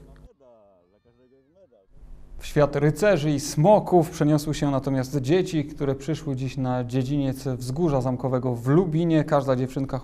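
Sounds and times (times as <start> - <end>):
faint drawn-out voice: 0.0 - 1.9.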